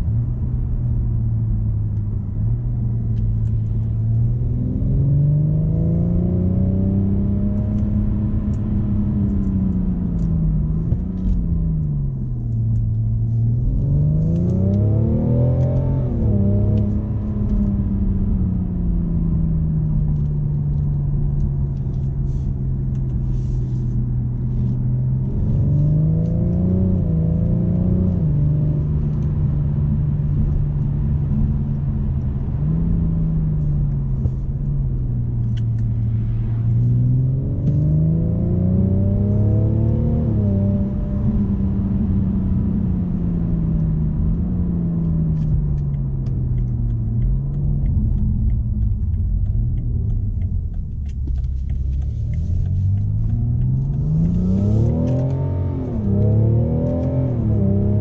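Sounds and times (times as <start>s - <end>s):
diesel engine accelerating: 0.0s - 58.0s
road and tyre rumble: 0.0s - 58.0s.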